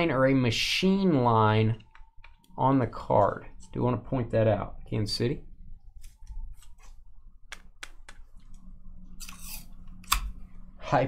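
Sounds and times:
cards clicking and tapping: 7.5s - 8.3s.

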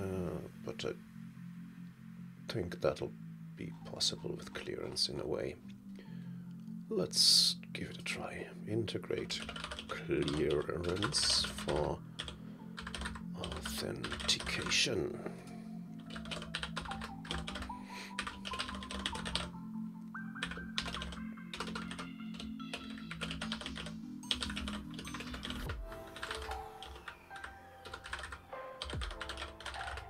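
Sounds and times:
background music sustained notes: 0.0s - 30.0s
typing on computer keyboard: 9.4s - 14.7s, 16.0s - 19.5s, 20.4s - 30.0s.

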